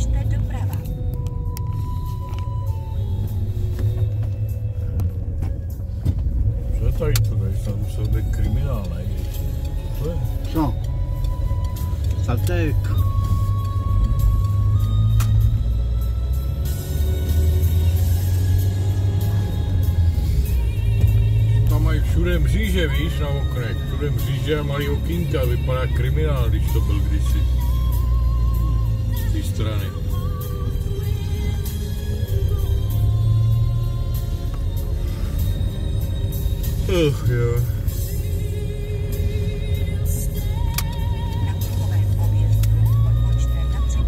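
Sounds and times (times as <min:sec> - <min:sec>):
car engine and tyres rumbling: 0:00.0 - 0:44.0
music playing: 0:00.0 - 0:44.0.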